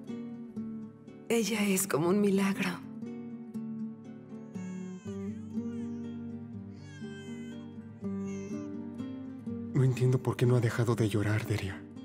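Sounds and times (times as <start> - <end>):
soft background music: 0.0 - 12.0
newborn baby crying: 4.1 - 9.3.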